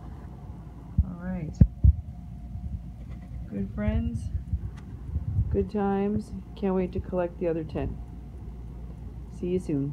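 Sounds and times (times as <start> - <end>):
low handling rumble: 0.0 - 8.2.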